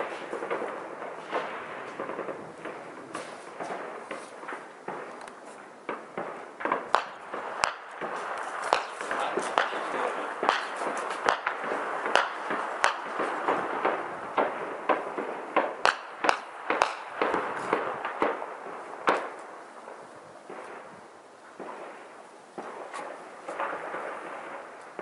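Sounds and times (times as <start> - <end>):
gunshots echoing between buildings: 0.0 - 25.0.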